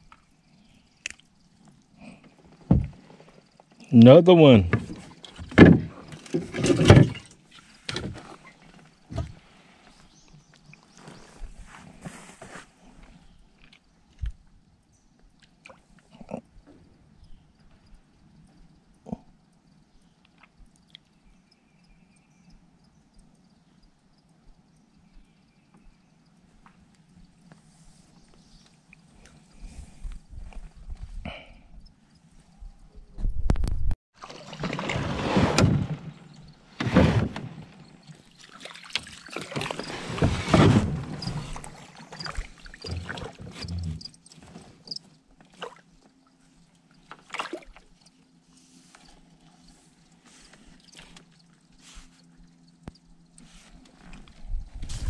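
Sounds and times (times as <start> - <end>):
water sloshing around kayak: 34.1 - 55.0.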